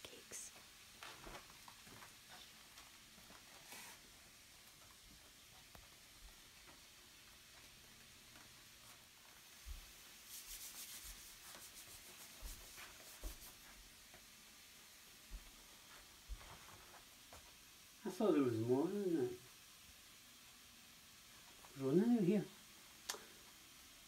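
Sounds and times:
soft scratchy rubbing: 0.1 - 4.2, 8.8 - 13.9.

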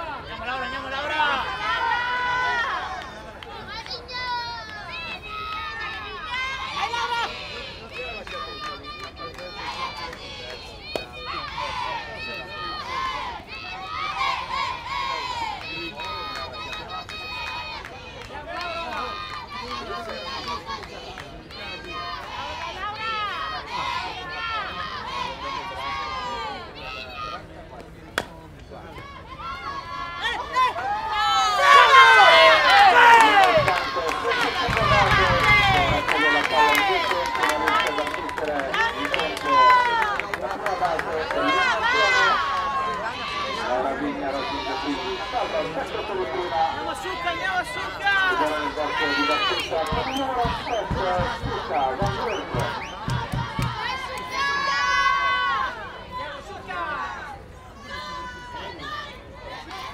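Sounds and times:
players calling and chanting: 0.0 - 59.9.

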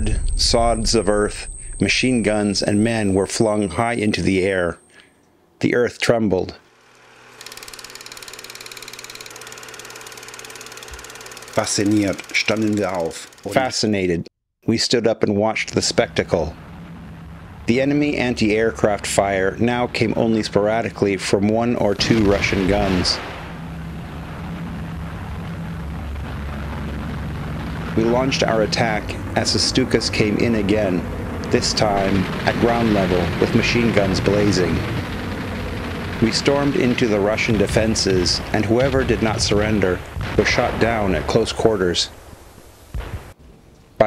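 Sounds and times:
propeller aircraft engines droning: 0.0 - 5.1, 6.0 - 14.2, 15.4 - 42.2
low hum: 0.0 - 5.6, 15.4 - 43.9
film projector rattling: 6.7 - 14.0.

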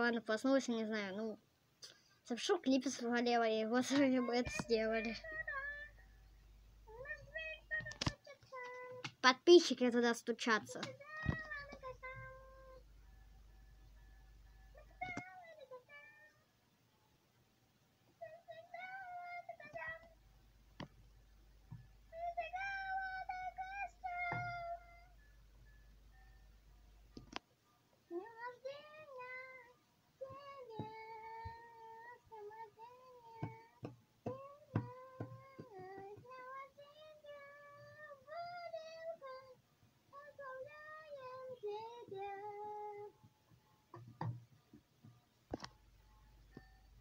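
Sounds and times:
faint low hum: 0.0 - 47.0
soft knock: 43.9 - 45.2.

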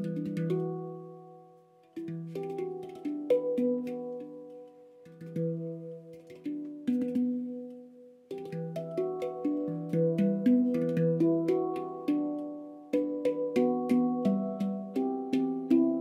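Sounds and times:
handpan notes ringing: 0.0 - 16.0.

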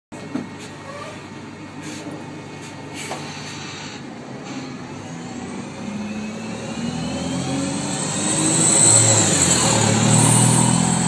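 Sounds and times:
bus diesel engine idling: 0.5 - 6.1.

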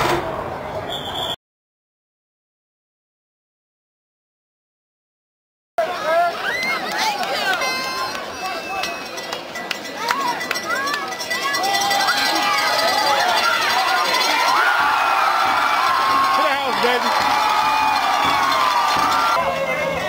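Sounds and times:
crowd yelling and cheering: 5.8 - 20.0.

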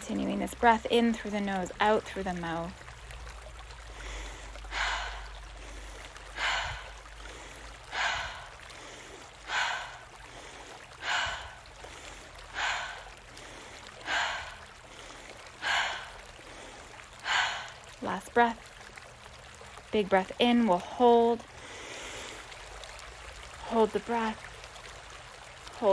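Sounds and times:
woman breathing rhythmically: 3.8 - 18.2, 21.4 - 23.6.

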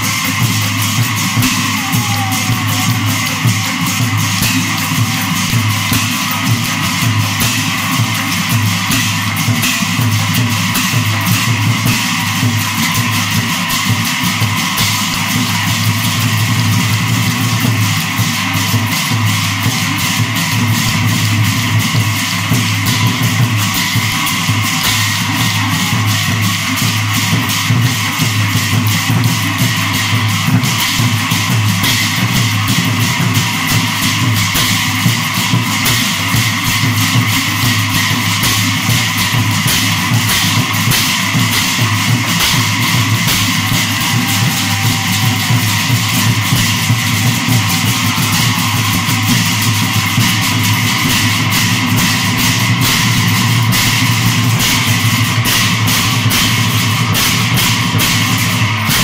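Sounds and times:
hand cymbals clashing: 0.0 - 59.0.

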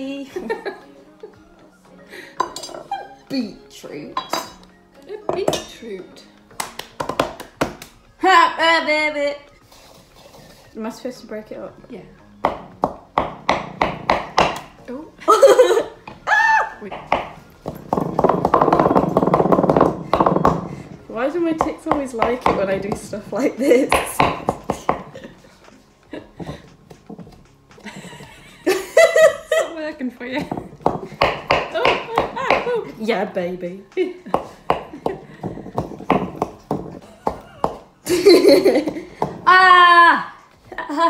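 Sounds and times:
wooden spoon scraping bowl: 9.6 - 10.8.

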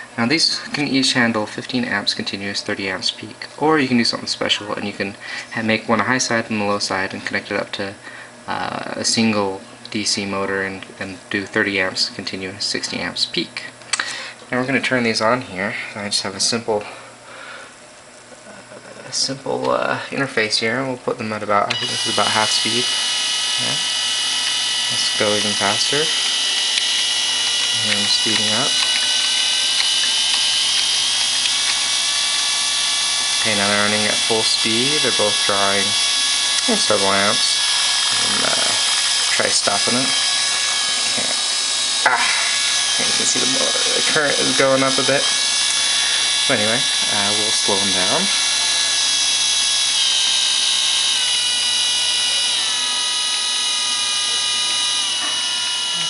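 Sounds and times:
electric motors whirring and whining: 0.0 - 19.4, 20.3 - 56.0.

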